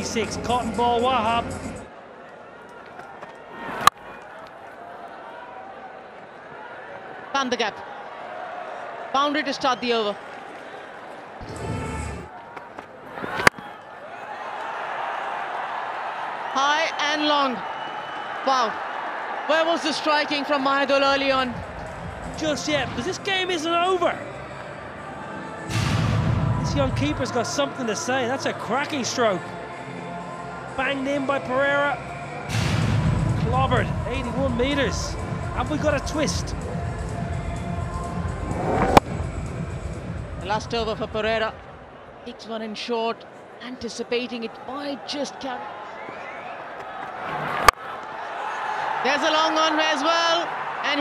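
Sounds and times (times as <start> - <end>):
stadium crowd noise: 0.0 - 51.0.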